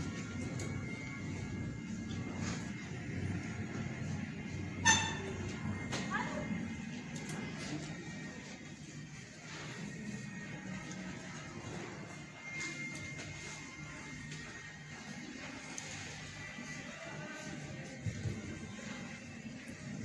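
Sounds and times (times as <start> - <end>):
quiet background music: 0.0 - 20.0.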